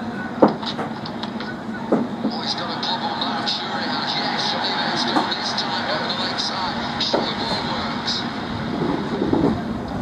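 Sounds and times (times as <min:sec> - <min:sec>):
faint indistinct voices: 0:00.0 - 0:10.0
steady noisy rush: 0:00.0 - 0:10.0.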